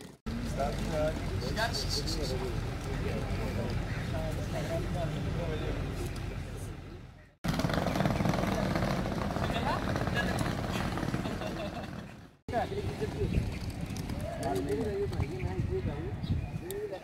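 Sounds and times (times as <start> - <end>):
chatter of people talking: 0.4 - 7.4.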